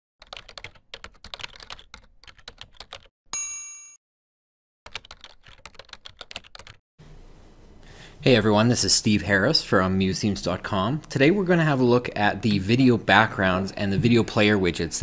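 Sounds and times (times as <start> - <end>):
rapid typing key clicks: 0.2 - 3.1, 4.9 - 6.8
bright ding: 3.4 - 4.0.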